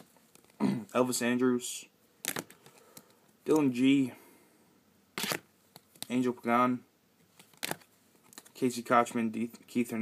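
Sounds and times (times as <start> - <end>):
plastic card holders handled: 2.2 - 3.6, 5.2 - 6.1, 7.3 - 8.6.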